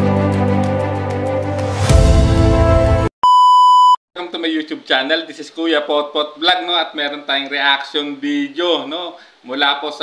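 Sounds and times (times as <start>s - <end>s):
background music with held notes: 0.0s - 3.1s
electronic beep tone: 3.2s - 4.0s.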